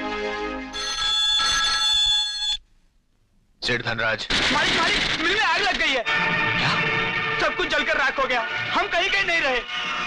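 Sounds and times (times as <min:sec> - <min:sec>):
telephone bell ringing: 0:00.8 - 0:02.6.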